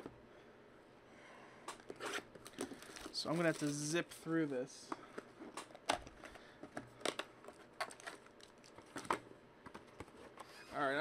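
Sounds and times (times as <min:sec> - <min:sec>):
foil packs crinkling: 0:02.4 - 0:04.0.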